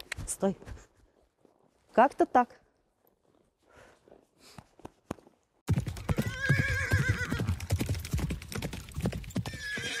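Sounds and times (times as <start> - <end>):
rapid horse hoofbeats: 4.8 - 10.0
horse whinnying: 5.9 - 7.7, 9.4 - 10.0.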